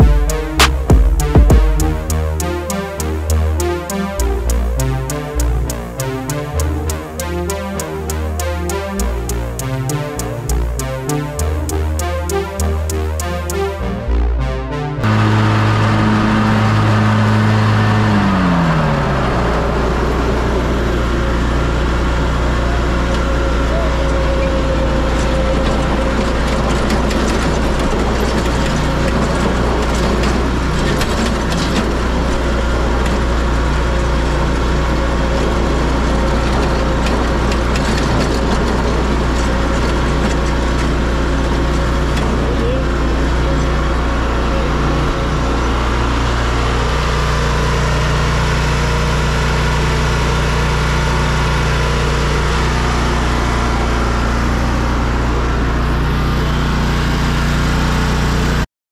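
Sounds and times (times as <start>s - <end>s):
mower engine running: 0.0s - 58.7s.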